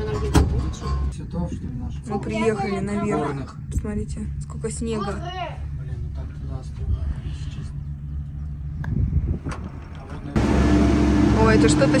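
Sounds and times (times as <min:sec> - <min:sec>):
cable car mechanical hum: 0:05.8 - 0:12.0.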